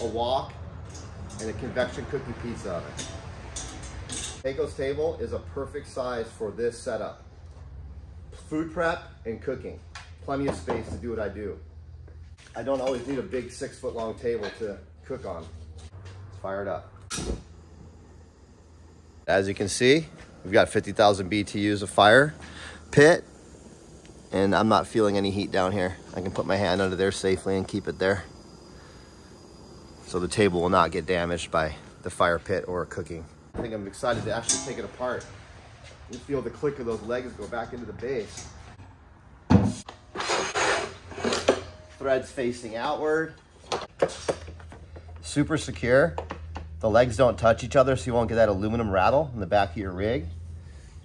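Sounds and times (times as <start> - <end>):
burner igniting click and whoomph: 16.9 - 38.8
flame hissing: 17.0 - 38.2
metal legs scraping: 39.7 - 42.2.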